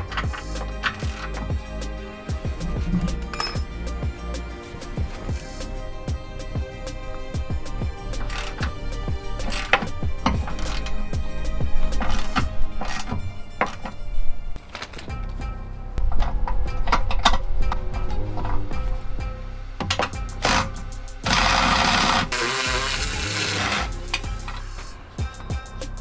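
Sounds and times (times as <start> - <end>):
background music: 0.0 - 26.0
electric ratchet spinning: 20.4 - 24.8.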